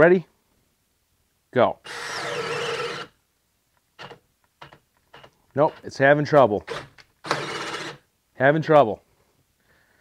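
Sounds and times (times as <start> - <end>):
cordless drill boring into wood: 1.8 - 3.2, 6.6 - 8.0.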